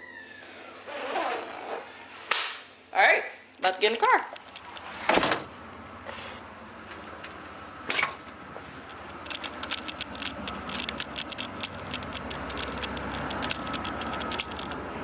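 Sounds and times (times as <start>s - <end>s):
nylon jacket rustling: 0.9s - 2.2s
small irregular clicks and scrapes: 8.8s - 14.9s.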